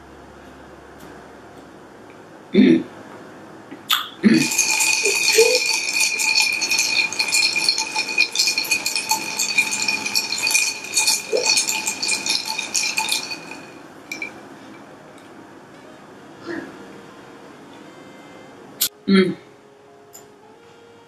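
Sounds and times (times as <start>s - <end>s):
glass ringing: 4.2s - 14.8s
ice cubes clinking in a glass: 4.3s - 14.4s.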